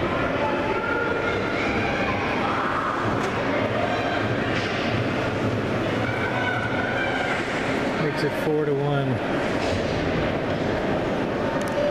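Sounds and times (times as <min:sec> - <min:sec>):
faint far-off voices: 0:00.0 - 0:11.9.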